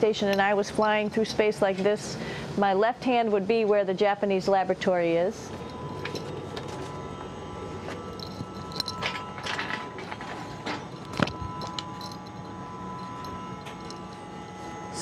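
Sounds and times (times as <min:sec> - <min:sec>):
cabin fans humming: 0:00.0 - 0:15.0
thin constant tones: 0:00.0 - 0:15.0.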